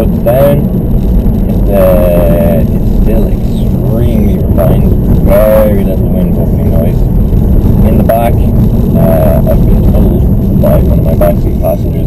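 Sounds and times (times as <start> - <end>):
man talking: 0.0 - 0.7, 1.6 - 7.0, 7.8 - 12.0
road and wind noise in car: 0.0 - 12.0.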